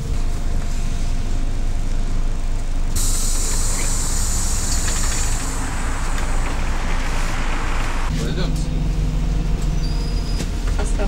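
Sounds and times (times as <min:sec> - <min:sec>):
bus engine and road rumble: 0:00.0 - 0:11.0
strong air hiss: 0:03.0 - 0:08.1.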